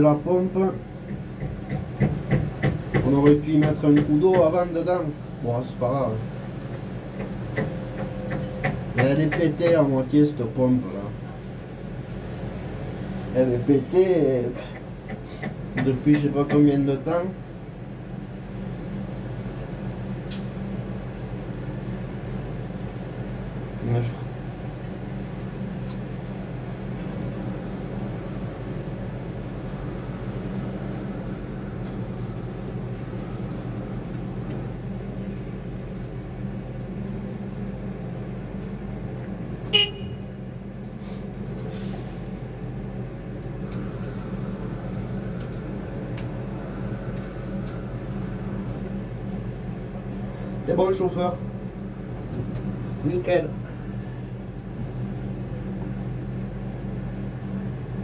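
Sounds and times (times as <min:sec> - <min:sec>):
low machinery drone: 0:00.0 - 0:58.0
short sharp horn toot: 0:39.7 - 0:40.3.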